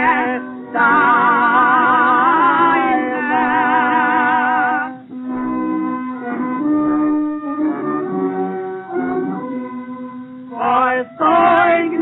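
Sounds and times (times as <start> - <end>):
instrumental melody of held notes: 0.0 - 12.0.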